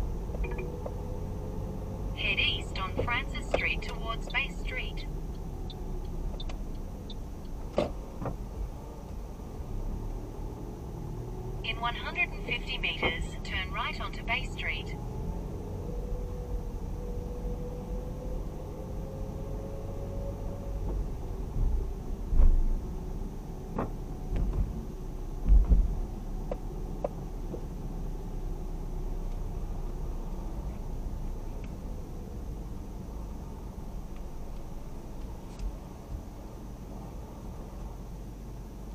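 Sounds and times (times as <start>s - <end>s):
car engine and tyres rumbling: 0.0s - 38.9s.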